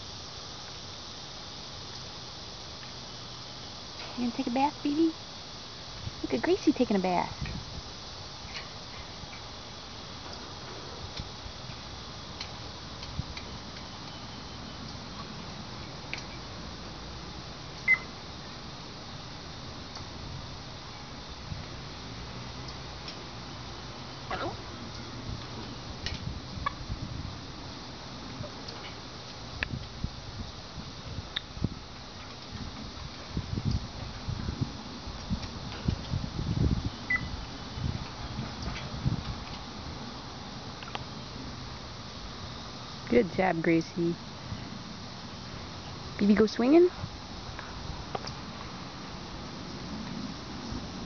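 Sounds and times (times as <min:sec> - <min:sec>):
steady background hiss: 0:00.0 - 0:51.0
high beep-like bird chirp: 0:17.9 - 0:18.1, 0:37.1 - 0:37.3.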